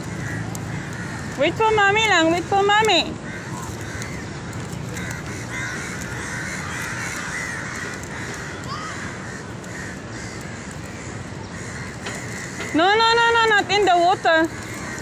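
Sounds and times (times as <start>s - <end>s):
birds calling: 0.0s - 15.0s
outdoor background hum: 0.0s - 15.0s.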